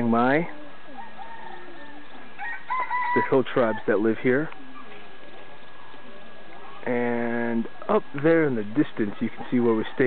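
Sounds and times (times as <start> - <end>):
roosters crowing: 0.2 - 6.9.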